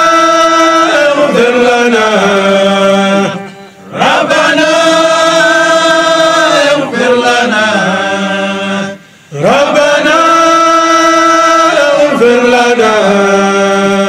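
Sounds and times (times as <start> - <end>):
men chanting: 0.0 - 14.0.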